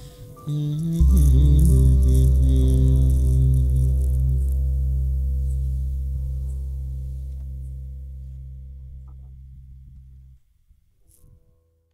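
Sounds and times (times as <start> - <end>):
sustained keyboard chord: 0.0 - 10.4.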